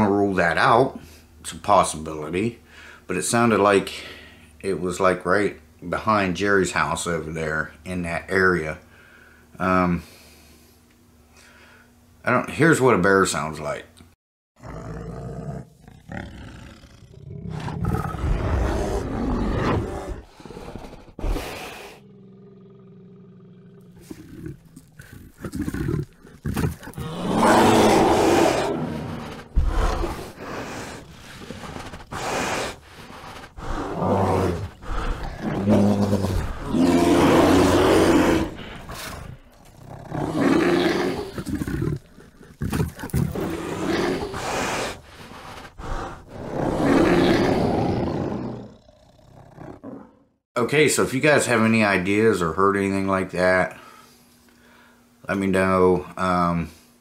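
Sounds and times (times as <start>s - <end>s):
bear growling: 14.6s - 50.2s.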